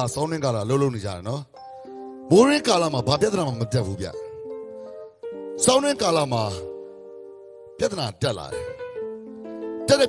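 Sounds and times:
man speaking over microphone: 0.0s - 1.6s, 2.3s - 4.4s, 5.6s - 6.7s, 7.8s - 8.8s, 9.8s - 10.0s.

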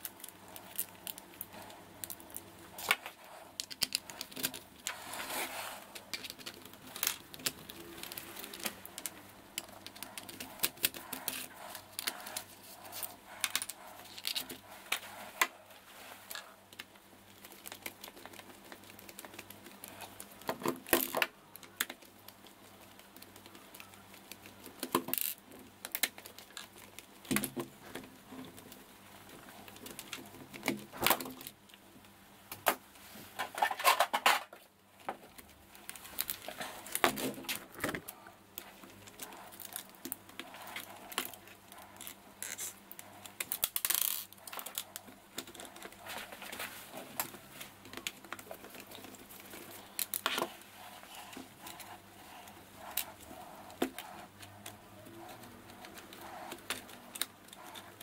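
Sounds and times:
small plastic parts clicking: 0.0s - 5.0s.

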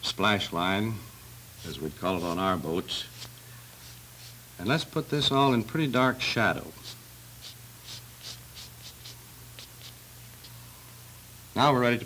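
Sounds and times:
steady low hum: 0.0s - 12.0s
chalk scraping on paper: 1.6s - 4.4s, 6.8s - 10.0s.

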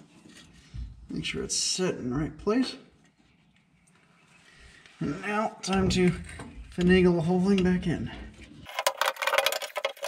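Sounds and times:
metal parts clicking and rattling: 8.6s - 10.0s.

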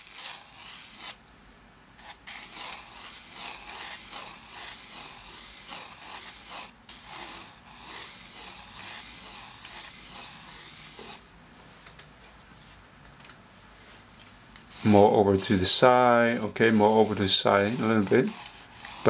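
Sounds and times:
pencil scratching on paper: 0.0s - 1.2s, 2.0s - 11.2s, 14.7s - 15.2s, 16.0s - 19.0s.

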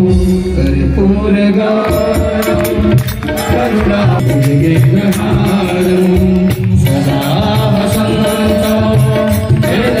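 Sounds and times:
sustained instrumental tones: 0.0s - 10.0s.

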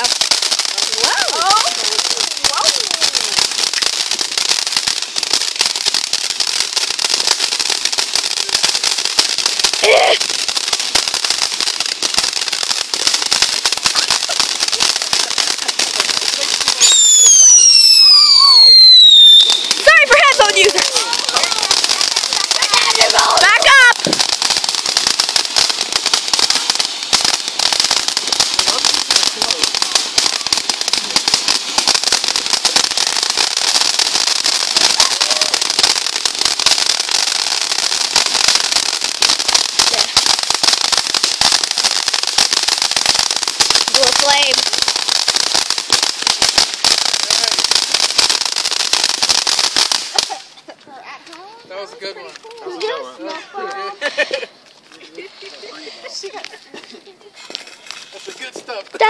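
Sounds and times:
firework fountain crackling hiss: 0.0s - 59.0s.

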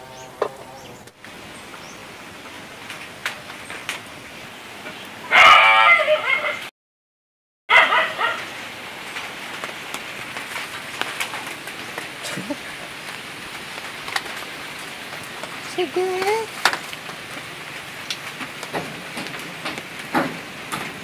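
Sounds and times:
animal calling loudly: 5.2s - 6.7s.

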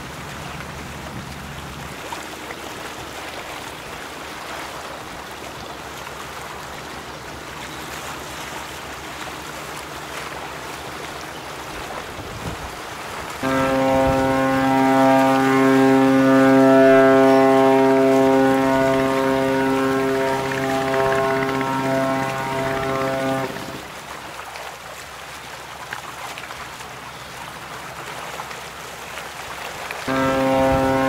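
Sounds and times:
water washing: 0.0s - 31.0s
wind: 0.0s - 31.0s
ship's horn blast: 13.3s - 24.1s, 29.9s - 31.0s.

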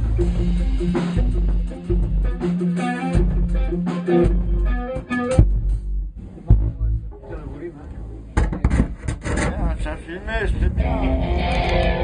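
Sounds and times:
rubbing and knocking handling noise: 7.9s - 9.8s.

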